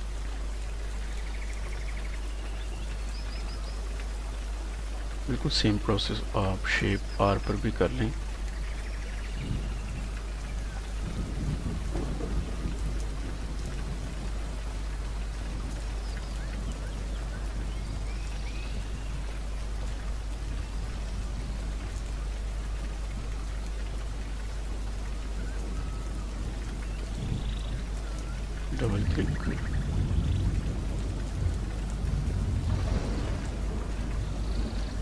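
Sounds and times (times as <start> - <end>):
background hiss: 0.0 - 35.0
constant low hum: 0.0 - 35.0.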